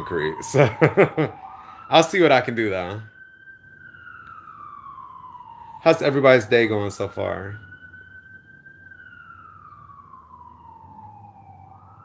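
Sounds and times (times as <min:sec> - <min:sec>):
emergency vehicle siren wailing: 0:00.0 - 0:12.0.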